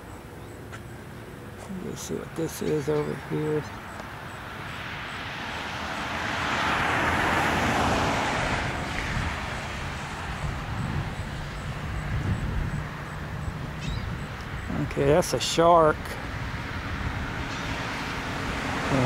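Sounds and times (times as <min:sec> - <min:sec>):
low rumble of traffic: 0:00.0 - 0:19.0
vehicle passing on highway: 0:00.0 - 0:19.0.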